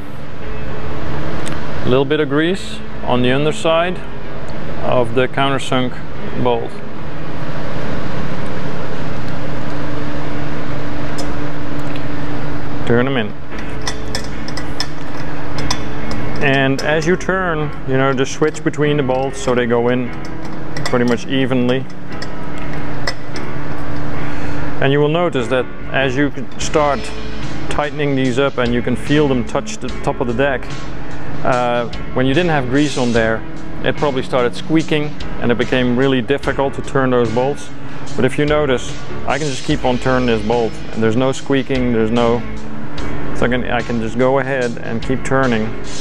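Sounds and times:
background music with held tones: 0:00.0 - 0:46.0
workshop fan running: 0:00.0 - 0:46.0
wrench clicking on bolts: 0:13.7 - 0:17.1.

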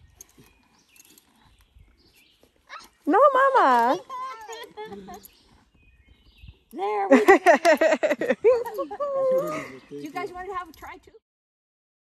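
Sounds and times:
horse mouth sounds: 0:00.0 - 0:06.8.

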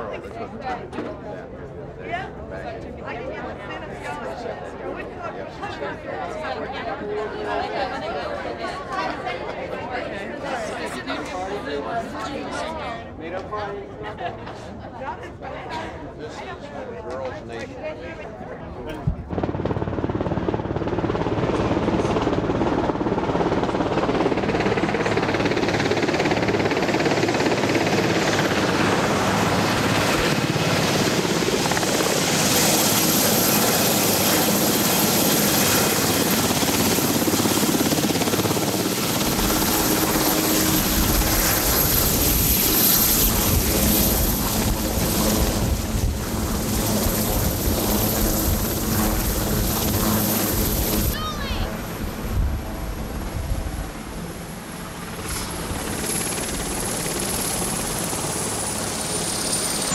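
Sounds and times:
helicopter running close: 0:00.0 - 0:59.9
deep rotor rumble: 0:36.0 - 0:59.9.

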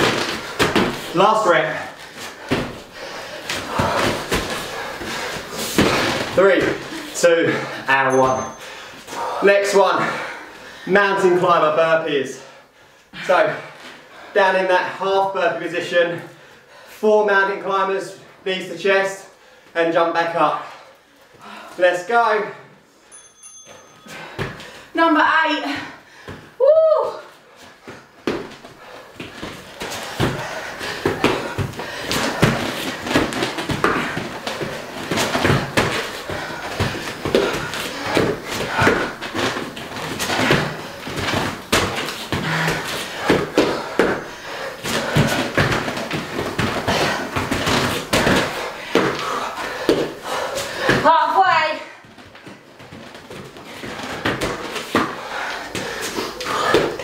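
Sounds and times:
feet and hands thudding on rubber floor: 0:00.0 - 0:01.2, 0:02.0 - 0:07.0, 0:27.6 - 0:57.0
breathing and effort sounds: 0:00.0 - 0:11.2, 0:12.2 - 0:17.4, 0:20.5 - 0:57.0.

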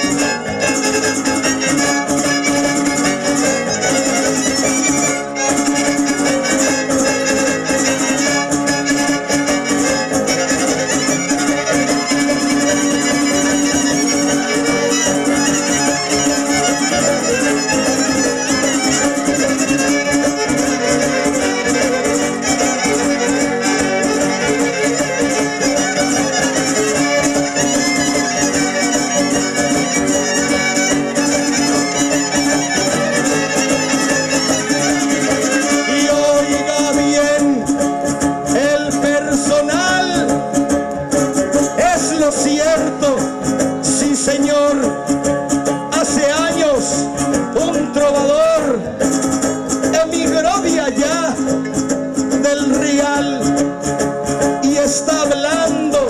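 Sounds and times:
violins playing melody: 0:00.0 - 0:38.7
strummed guitars: 0:00.0 - 0:56.0.

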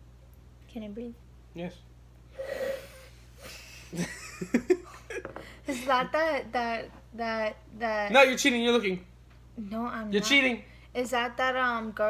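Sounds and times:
faint breath: 0:02.3 - 0:03.9
woman sniffing hard: 0:02.4 - 0:03.9.

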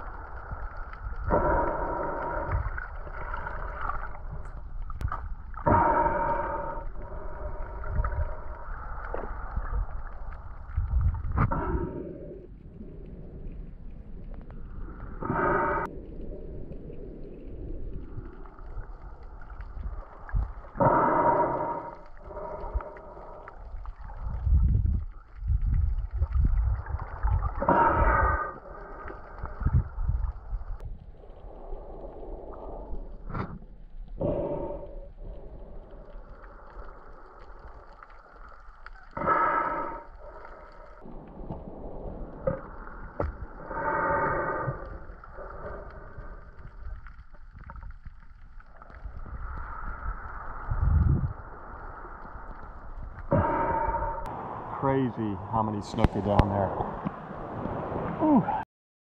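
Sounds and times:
breathing through snorkel tube: 0:00.0 - 0:04.5, 0:05.6 - 0:09.7, 0:11.3 - 0:12.5, 0:15.2 - 0:15.9, 0:20.8 - 0:24.6, 0:27.6 - 0:30.3, 0:34.2 - 0:37.8, 0:39.0 - 0:41.0, 0:43.3 - 0:47.0, 0:49.0 - 0:54.3
muffled underwater sloshing: 0:00.0 - 0:58.6.

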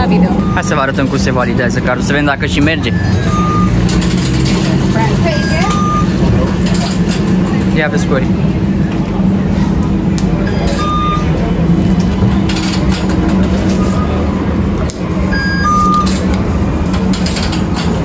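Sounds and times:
card reader beeping: 0:00.0 - 0:07.0, 0:10.4 - 0:11.5, 0:12.5 - 0:14.3, 0:15.3 - 0:18.0.

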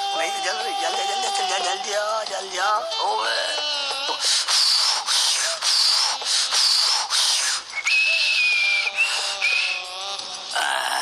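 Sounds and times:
man blowing into stove: 0:04.3 - 0:09.9
whistling blows: 0:07.7 - 0:09.9.

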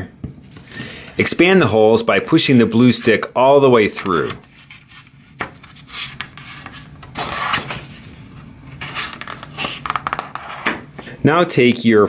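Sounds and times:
cardstock rustling and scraping: 0:03.9 - 0:10.8.

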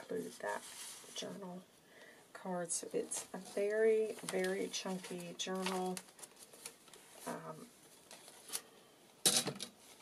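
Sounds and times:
paper and card rustling: 0:00.0 - 0:01.4, 0:02.8 - 0:08.8.

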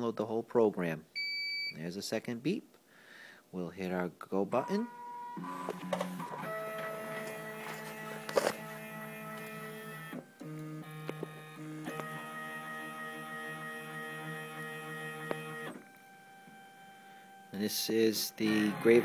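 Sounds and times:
engraving machine motor whine: 0:05.4 - 0:17.6.

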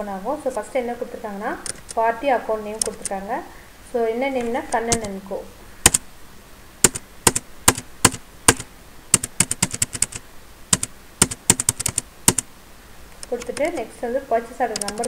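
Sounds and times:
person speaking: 0:00.0 - 0:06.1, 0:13.2 - 0:15.0
computer keyboard typing: 0:01.6 - 0:02.0, 0:02.8 - 0:03.2, 0:04.4 - 0:05.2, 0:06.8 - 0:12.5, 0:13.2 - 0:13.9, 0:14.7 - 0:15.0.

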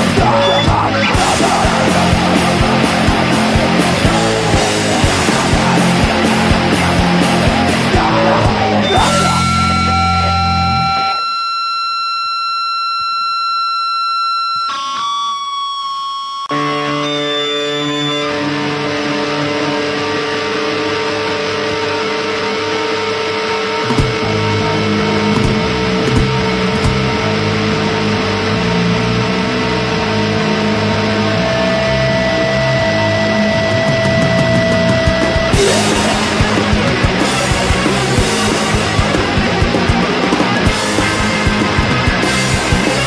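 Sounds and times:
punk band playing: 0:00.0 - 0:11.2, 0:16.5 - 0:43.0
distorted bass and guitar: 0:00.0 - 0:43.0
guitar feedback tones: 0:00.0 - 0:43.0.

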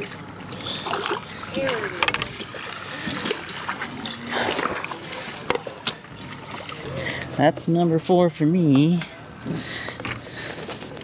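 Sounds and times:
water splashing: 0:00.0 - 0:07.4
fish thrashing in a net: 0:00.6 - 0:05.4.

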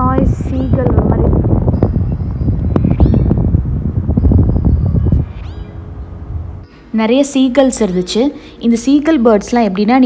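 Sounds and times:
wind buffeting microphone: 0:00.0 - 0:06.6
gull calls: 0:02.8 - 0:03.4.

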